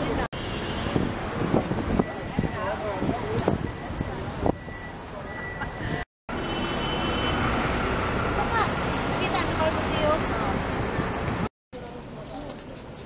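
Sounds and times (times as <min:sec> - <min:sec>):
traffic rumble: 0:00.0 - 0:13.0.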